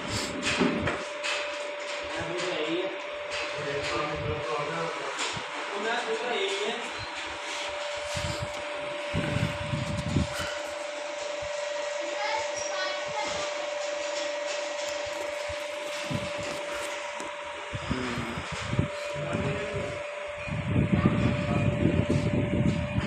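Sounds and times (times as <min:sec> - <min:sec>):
electric motor hum and whine: 0:00.0 - 0:23.0.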